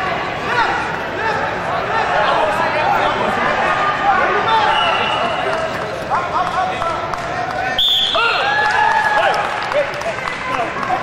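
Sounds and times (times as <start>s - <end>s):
crowd shouting and chatter: 0.0s - 11.0s.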